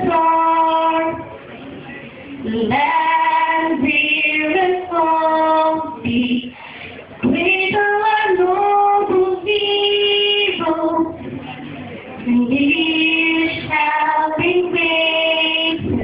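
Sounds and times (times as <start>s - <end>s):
girl singing: 0.0s - 1.2s, 2.4s - 6.6s, 7.2s - 11.2s, 12.2s - 16.0s.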